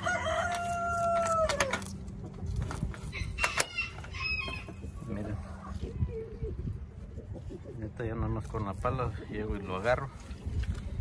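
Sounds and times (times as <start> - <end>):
rooster crowing: 0.0 - 1.9, 3.0 - 4.7.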